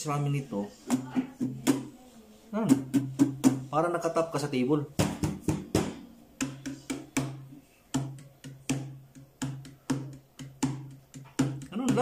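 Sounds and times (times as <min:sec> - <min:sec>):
hand slapping guitar top: 0:05.0 - 0:12.0.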